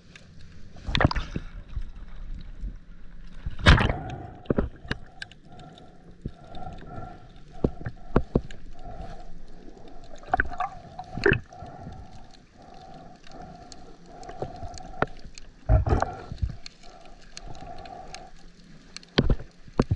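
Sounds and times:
pulsing underwater hum: 0:00.0 - 0:19.9
underwater clicks and knocks: 0:03.3 - 0:09.0, 0:10.2 - 0:12.0, 0:18.9 - 0:19.9.

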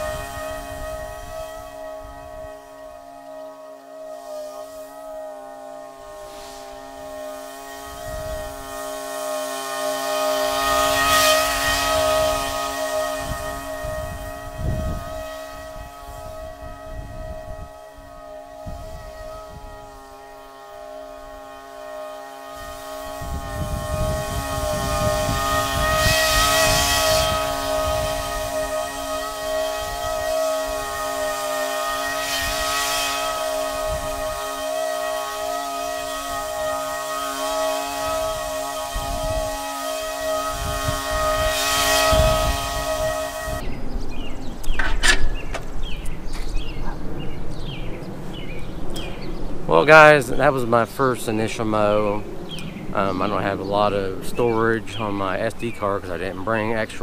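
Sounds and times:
lawn mower running: 0:00.0 - 0:46.8.

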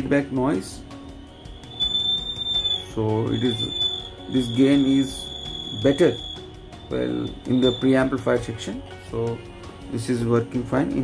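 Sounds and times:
high-pitched feedback whistle: 0:01.0 - 0:08.4.

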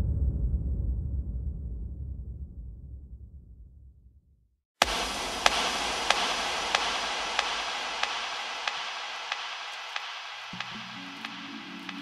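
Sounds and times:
record hiss and crackle: 0:04.8 - 0:12.0
sharp clicks: 0:04.8 - 0:12.0.

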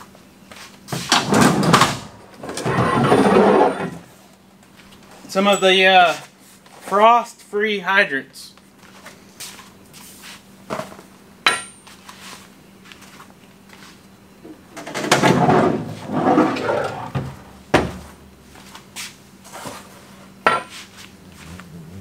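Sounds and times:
faint steady hum: 0:00.0 - 0:22.0
box scraping on tailgate: 0:15.3 - 0:17.1.

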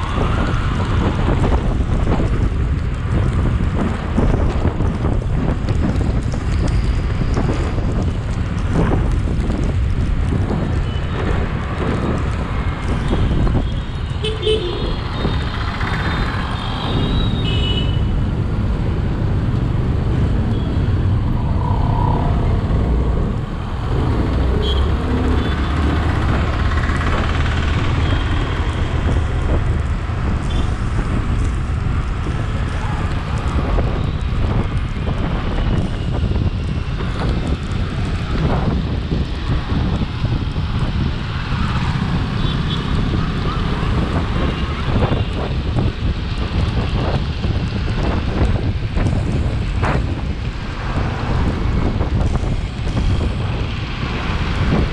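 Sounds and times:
wind rumble on microphone: 0:00.0 - 0:54.9.

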